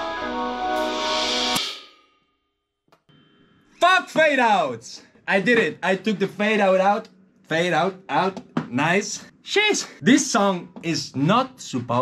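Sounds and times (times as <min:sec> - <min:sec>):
drum kit hit: 0:00.8 - 0:02.0.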